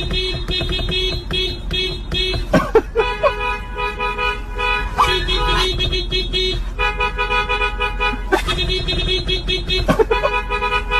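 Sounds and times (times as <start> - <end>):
car horns honking: 0.0 - 10.9.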